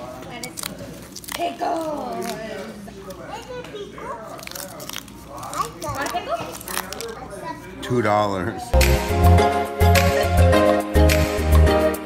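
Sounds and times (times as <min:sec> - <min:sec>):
paper tickets tearing: 0:00.0 - 0:02.8, 0:04.2 - 0:07.4.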